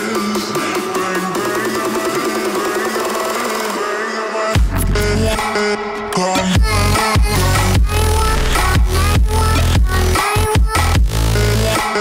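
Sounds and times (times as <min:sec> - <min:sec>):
electronic background music: 0:00.0 - 0:12.0.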